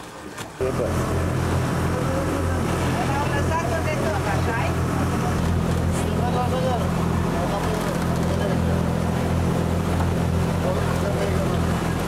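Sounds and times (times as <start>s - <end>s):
boat engine droning: 0.1s - 12.0s
people's voices: 0.6s - 12.0s.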